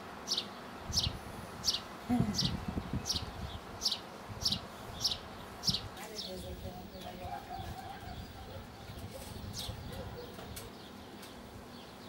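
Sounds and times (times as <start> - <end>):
birds chirping: 0.2 - 12.0.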